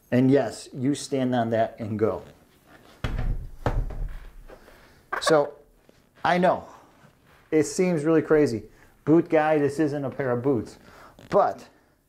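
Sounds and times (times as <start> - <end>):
heavy board thunking on table: 3.0 - 4.4.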